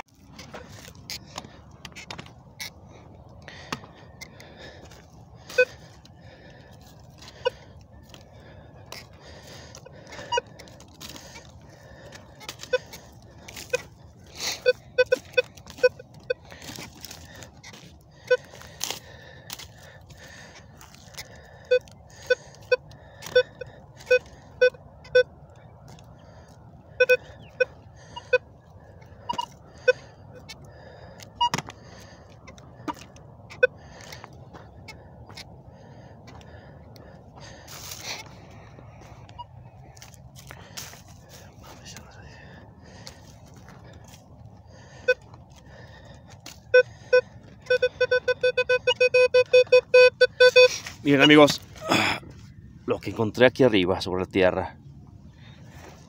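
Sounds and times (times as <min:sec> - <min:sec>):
metal detector beeps: 0:03.6 - 0:08.2, 0:08.9 - 0:19.0, 0:20.1 - 0:26.3, 0:26.9 - 0:30.6, 0:31.2 - 0:35.5, 0:38.9 - 0:40.1, 0:44.7 - 0:51.6.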